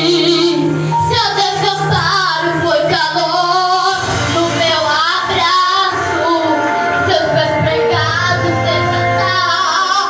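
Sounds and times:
girl singing into a microphone: 0.0 - 10.0
instrumental backing track: 0.0 - 10.0.

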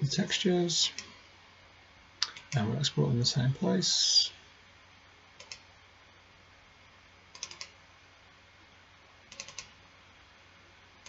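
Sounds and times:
low steady hiss: 0.0 - 11.0
keyboard and mouse clicks: 5.4 - 5.6, 7.3 - 7.8, 9.3 - 9.8.

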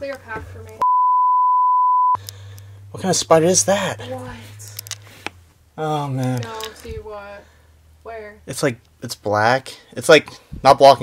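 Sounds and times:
censor bleep: 0.8 - 2.2.

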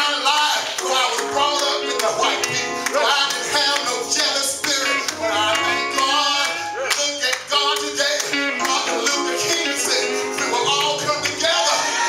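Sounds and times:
church music with held chords: 0.0 - 12.0.

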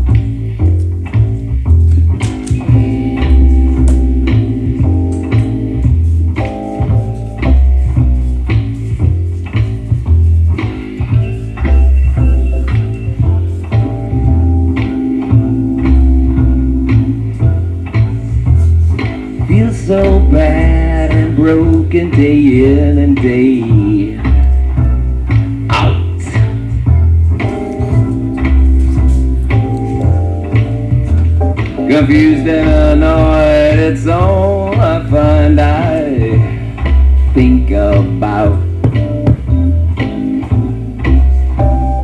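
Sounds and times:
bass guitar line: 0.0 - 42.0
electric guitar: 0.0 - 42.0.

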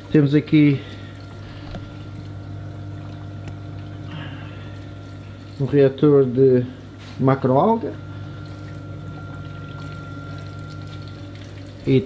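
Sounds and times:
low hum of pumps: 0.0 - 12.0
water running and pouring: 8.0 - 12.0.

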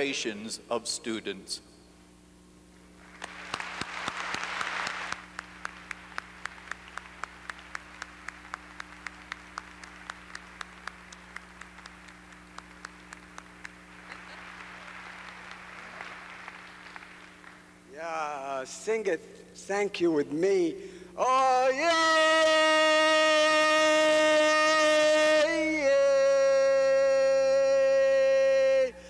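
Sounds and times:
audience applauding: 3.0 - 17.7
single person clapping steadily: 3.2 - 17.7.

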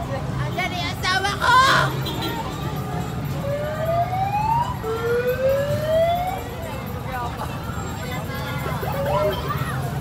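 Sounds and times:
street crowd chatter: 0.0 - 10.0
siren wailing: 3.4 - 6.4.

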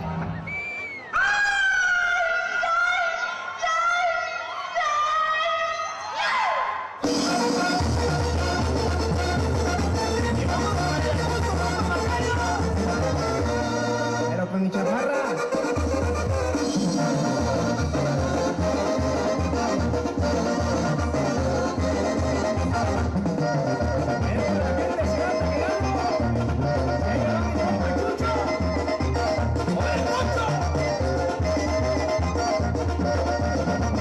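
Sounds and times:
brass band music over loudspeakers: 7.0 - 34.0.

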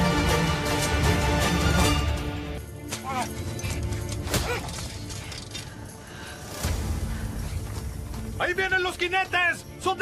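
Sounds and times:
dramatic film score: 0.0 - 10.0.

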